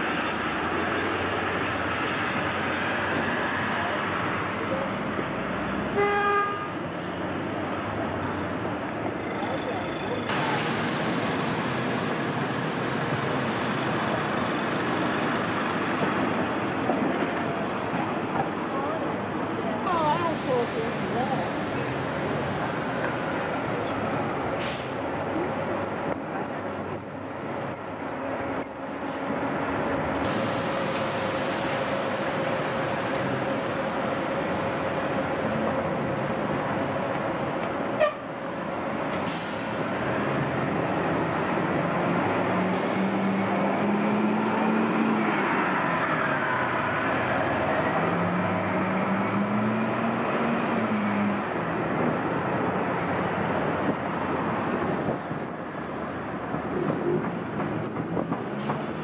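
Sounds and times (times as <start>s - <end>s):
diesel bus engine: 0.0s - 59.0s.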